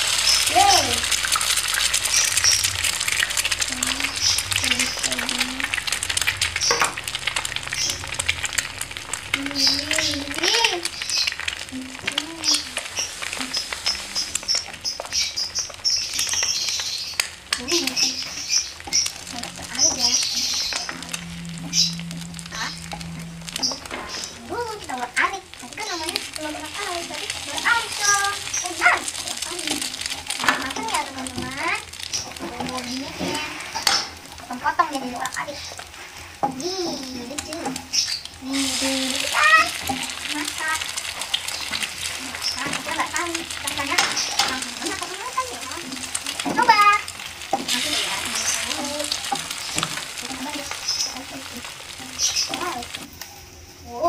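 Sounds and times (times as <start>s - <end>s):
eggs sizzling in frying pan: 0.0s - 54.0s
wooden spatula scraping pan: 17.8s - 53.1s.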